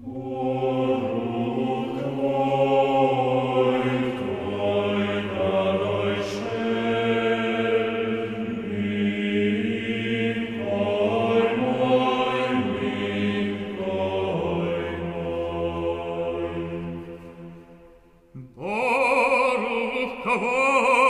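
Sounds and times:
choir singing: 0.0s - 21.0s
cantor singing with vibrato: 18.4s - 21.0s.

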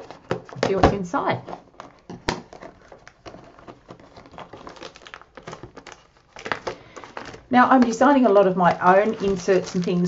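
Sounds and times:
shrink wrap crinkling: 0.0s - 10.0s.

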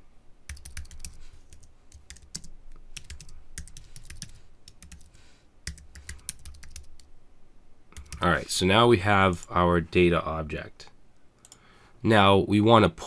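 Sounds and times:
computer keyboard typing: 0.5s - 7.1s, 8.0s - 8.3s.

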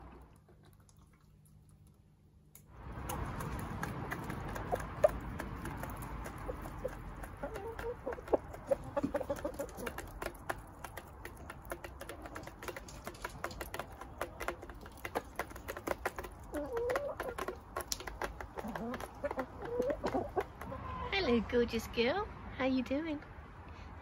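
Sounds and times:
beaks pecking a metal bowl: 2.8s - 20.8s
hens clucking: 3.0s - 21.4s.

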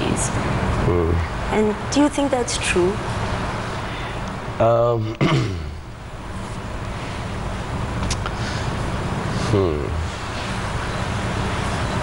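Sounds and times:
low hum and hiss: 0.0s - 12.0s
man clearing his throat: 5.0s - 5.8s.

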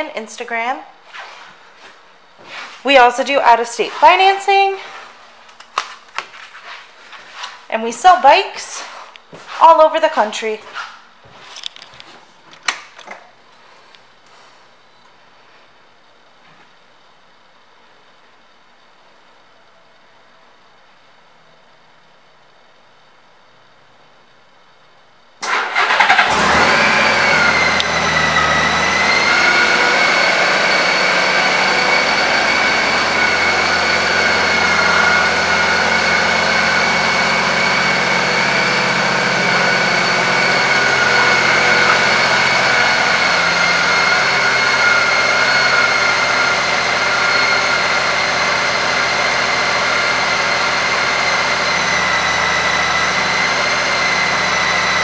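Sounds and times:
motorcycle engine starting and idling: 25.4s - 55.0s
steady high whine: 26.2s - 55.0s.

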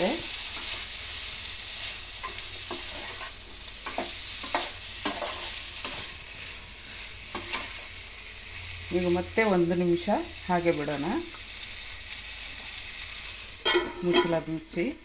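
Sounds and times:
vegetables sizzling in oil: 0.0s - 15.0s
spatula scraping pan: 2.2s - 6.2s, 6.8s - 7.9s.

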